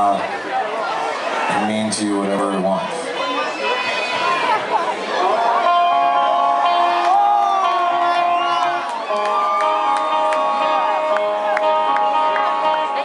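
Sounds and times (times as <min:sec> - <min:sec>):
crowd cheering and whooping: 0:03.0 - 0:13.0
held electric guitar notes: 0:05.3 - 0:13.0
live rock band: 0:05.3 - 0:13.0.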